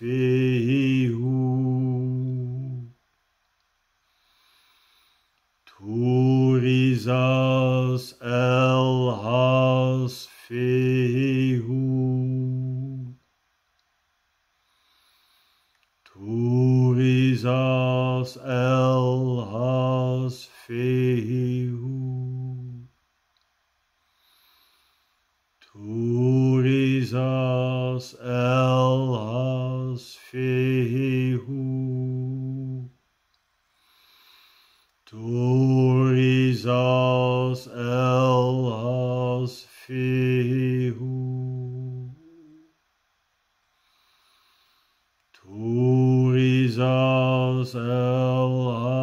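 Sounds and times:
man chanting in a drone: 0:00.0 - 0:03.0, 0:05.7 - 0:13.2, 0:16.0 - 0:22.9, 0:25.6 - 0:33.0, 0:35.0 - 0:42.7, 0:45.3 - 0:49.0.

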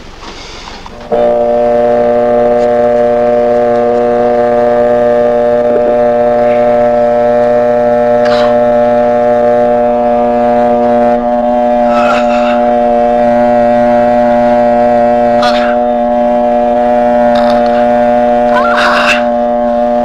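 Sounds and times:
cautery pen buzzing: 0:00.9 - 0:20.0.

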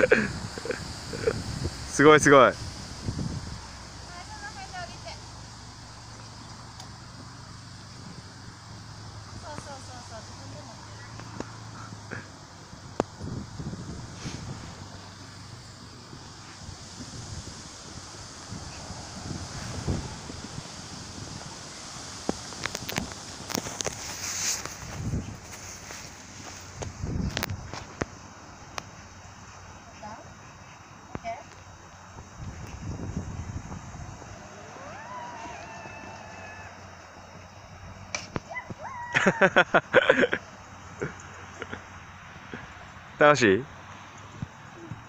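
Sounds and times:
wind buffeting microphone: 0:00.0 - 0:28.2, 0:30.3 - 0:39.0
zip-wire trolley rumble: 0:32.4 - 0:38.0.

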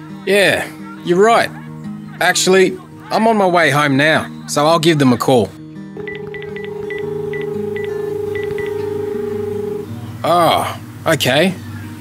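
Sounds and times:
keypad beeps: 0:06.0 - 0:09.8
telephone dial tone: 0:06.0 - 0:09.9.

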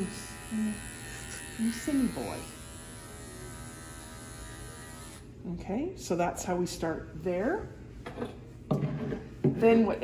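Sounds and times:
electric clipper humming: 0:00.0 - 0:05.4.

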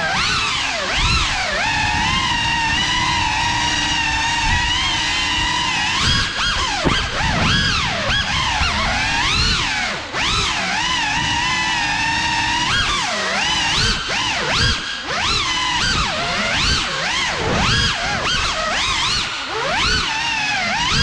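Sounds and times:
drone motors whining: 0:00.0 - 0:21.0.

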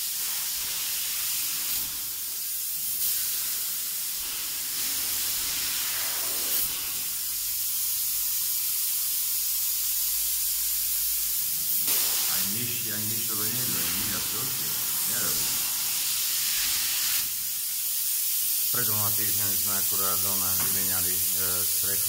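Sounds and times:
spray foam gun hissing: 0:00.0 - 0:22.0.

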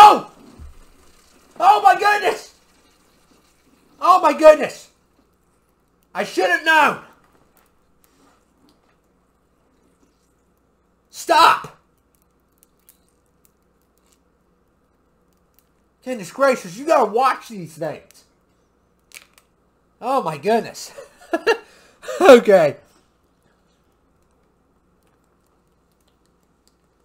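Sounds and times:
low room hum: 0:00.0 - 0:27.0
sparkling water fizzing: 0:00.1 - 0:06.4
faint irregular ticks: 0:02.4 - 0:04.0, 0:11.9 - 0:15.9, 0:23.4 - 0:27.0
tiny ticks: 0:23.9 - 0:27.0.

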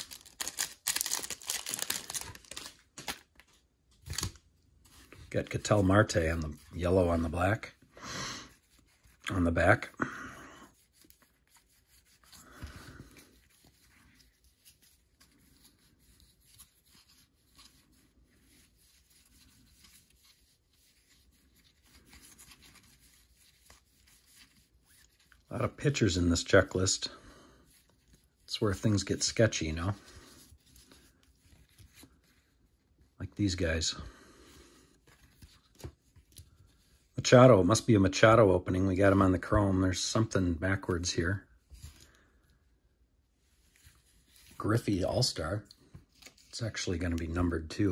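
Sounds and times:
cards sliding and flipping: 0:00.0 - 0:05.3.

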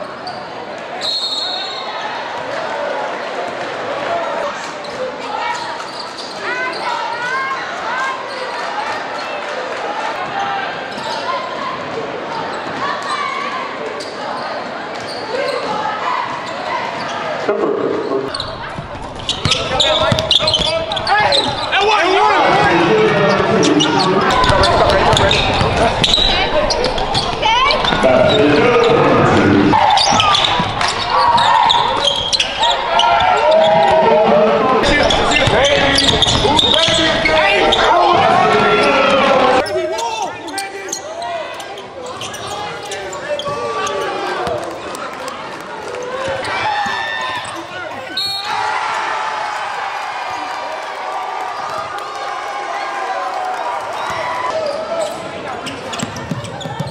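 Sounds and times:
voices echoing in a hall: 0:00.0 - 0:56.9.

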